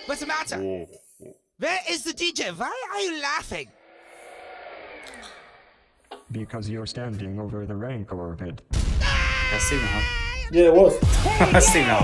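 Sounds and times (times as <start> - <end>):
rushing noise with falling tone: 3.7 - 5.9.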